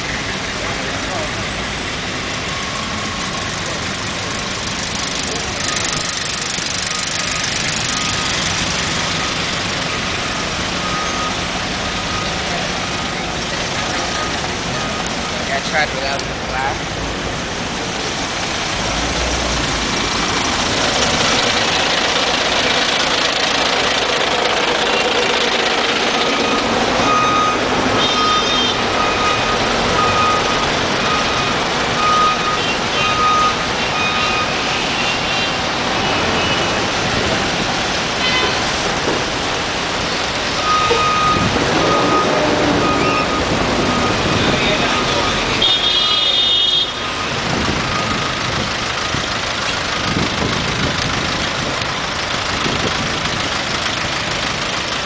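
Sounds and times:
dense road traffic: 0:00.0 - 0:55.0
reversing alarm beeping: 0:02.4 - 0:03.5, 0:05.6 - 0:13.3, 0:24.7 - 0:34.8, 0:40.6 - 0:48.5.

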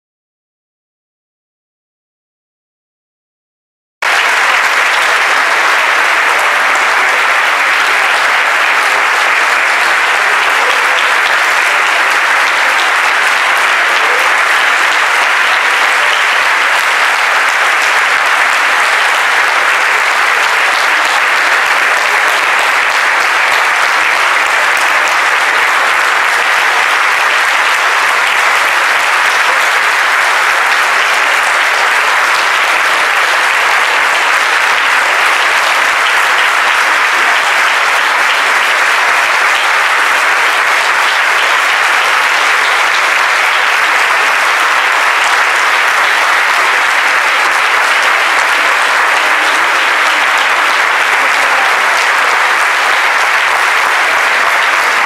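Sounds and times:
audience applauding: 0:04.0 - 0:55.0.

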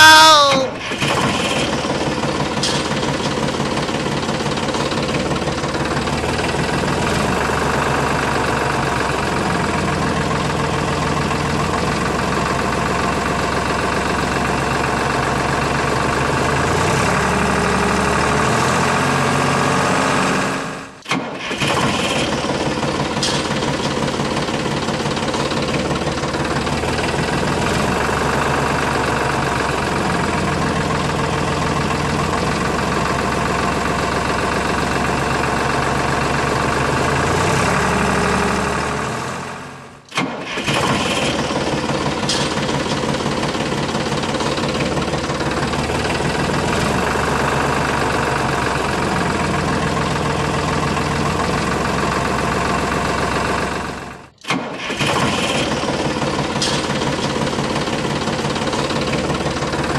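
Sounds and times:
tractor engine running: 0:00.0 - 0:59.9.

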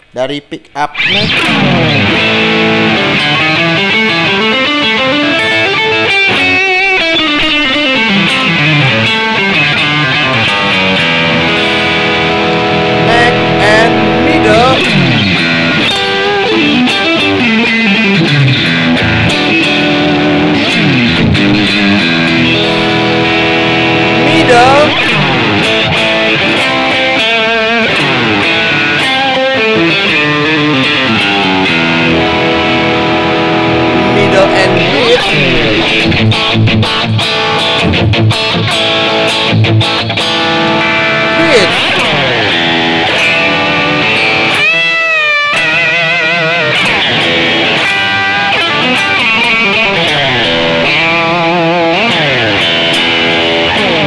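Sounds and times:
distorted electric guitar riffs: 0:00.8 - 0:54.0.

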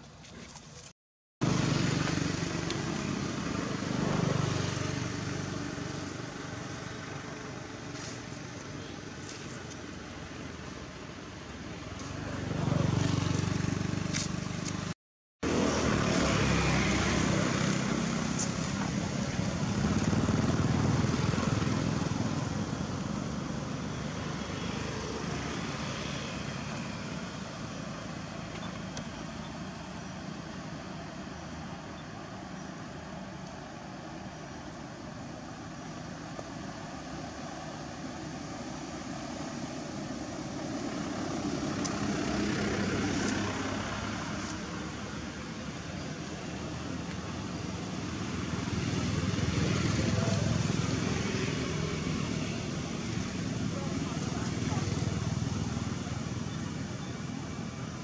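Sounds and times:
outdoor background noise: 0:00.0 - 0:58.0
vehicle engine passing: 0:01.4 - 0:09.4, 0:12.0 - 0:28.3, 0:36.6 - 0:56.5.

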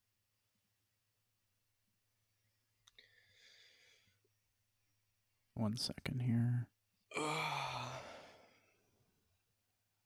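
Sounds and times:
breathy sigh: 0:07.1 - 0:08.7.

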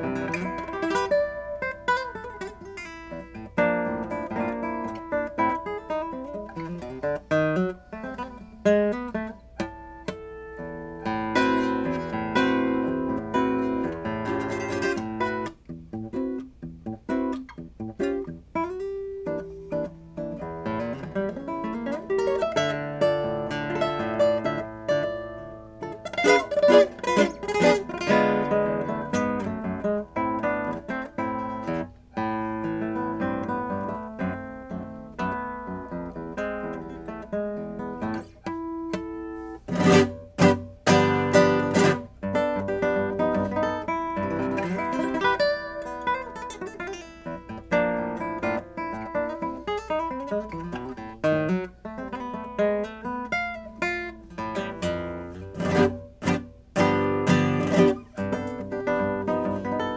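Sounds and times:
fingerstyle classical guitar: 0:00.0 - 0:59.9
loud strummed guitar chords: 0:53.9 - 0:59.9.

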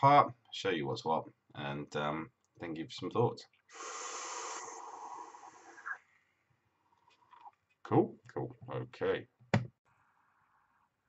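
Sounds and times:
vape hiss of air drawn: 0:03.7 - 0:06.0.

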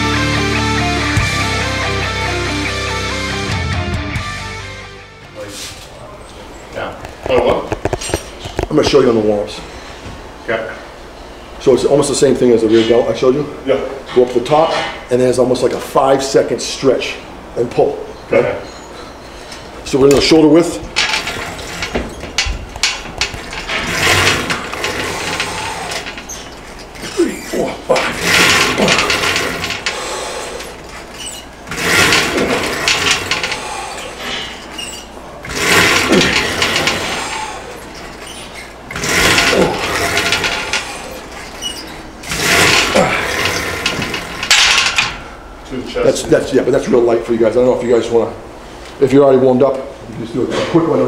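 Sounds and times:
hard breaths: 0:09.6 - 0:10.4, 0:23.8 - 0:31.2, 0:32.2 - 0:38.1, 0:39.0 - 0:41.5
chain and weight stack moving: 0:18.7 - 0:45.6.

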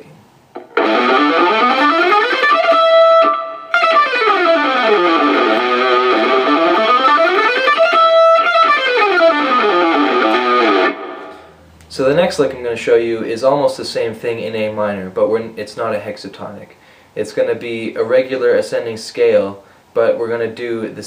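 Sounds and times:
electric guitar fast scale run: 0:00.8 - 0:11.3.

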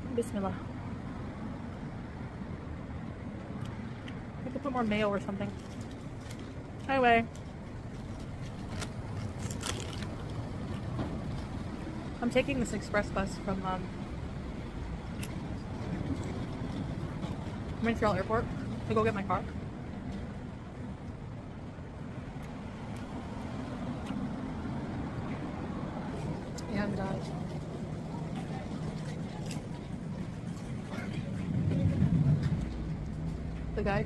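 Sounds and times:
engine hum: 0:00.0 - 0:34.0
low street rumble: 0:00.0 - 0:34.0
potato chip crunching: 0:08.1 - 0:10.3.

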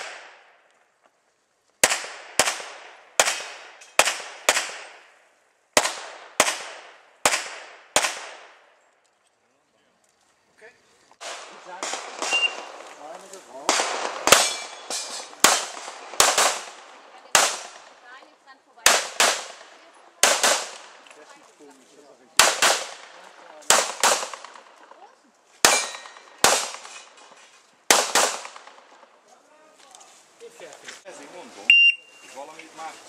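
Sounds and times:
pistol shots with echo: 0:01.8 - 0:05.1, 0:05.8 - 0:08.7, 0:11.2 - 0:12.8, 0:13.6 - 0:18.0, 0:18.8 - 0:21.1, 0:22.4 - 0:24.7, 0:25.6 - 0:27.1, 0:27.9 - 0:28.9.

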